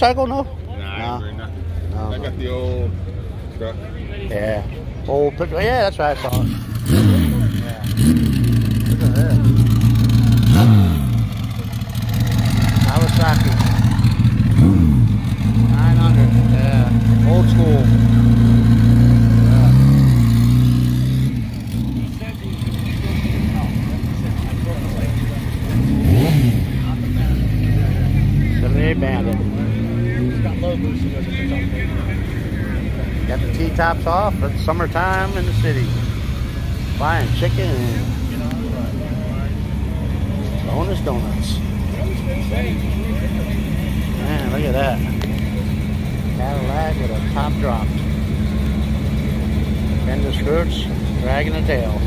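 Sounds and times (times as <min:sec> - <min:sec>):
people talking: 0:00.0 - 0:14.7, 0:15.3 - 0:20.3, 0:21.6 - 0:52.0
motorcycle engine idling and revving: 0:00.0 - 0:52.0.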